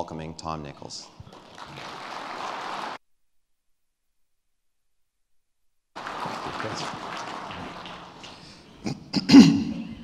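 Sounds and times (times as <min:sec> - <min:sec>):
audience applauding: 0:01.3 - 0:03.0, 0:06.0 - 0:08.7.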